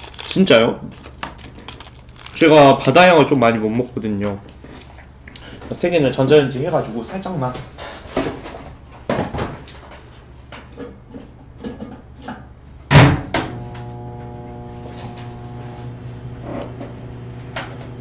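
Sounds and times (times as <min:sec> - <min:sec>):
microwave door shutting: 0:12.9 - 0:18.0
microwave oven humming: 0:12.9 - 0:18.0.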